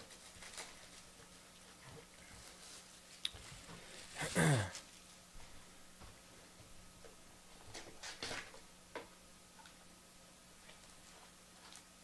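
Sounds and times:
plastic wrap crinkling: 0:00.0 - 0:01.4.

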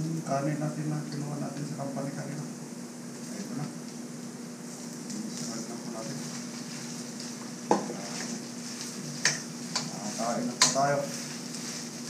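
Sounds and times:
rice sizzling in a wok: 0:00.0 - 0:12.0.

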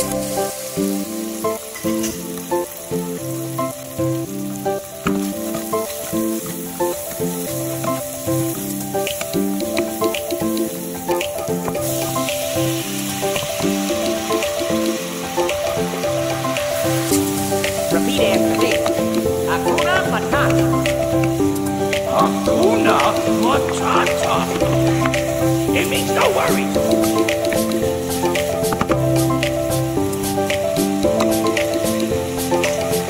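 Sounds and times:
background music: 0:00.0 - 0:33.0
onions and chicken sizzling: 0:00.0 - 0:33.0.

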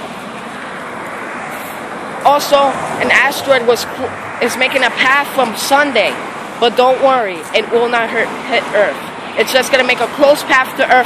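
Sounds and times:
traffic: 0:00.0 - 0:11.0.

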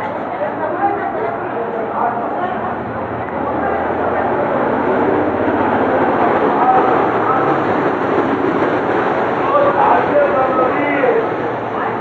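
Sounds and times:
many distant voices: 0:00.0 - 0:12.0
traffic noise: 0:00.0 - 0:12.0.

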